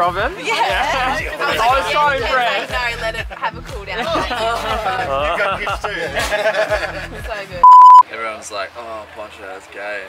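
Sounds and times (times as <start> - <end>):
high-pitched censor beep: 7.6 - 8.0.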